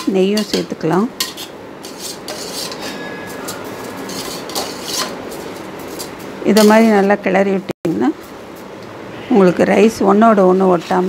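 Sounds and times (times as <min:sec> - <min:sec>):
metal ladle scraping a pot: 0:00.0 - 0:06.8.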